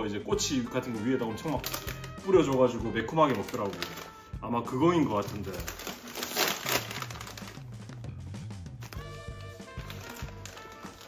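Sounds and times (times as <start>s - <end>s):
chip bag tearing and crinkling: 1.4s - 2.6s, 3.3s - 4.2s, 5.1s - 7.7s, 8.8s - 11.0s.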